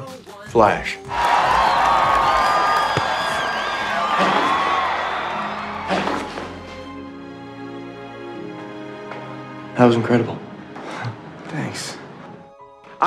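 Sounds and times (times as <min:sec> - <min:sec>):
trailer music: 0:01.0 - 0:13.0
crowd cheering and whooping: 0:01.1 - 0:07.0.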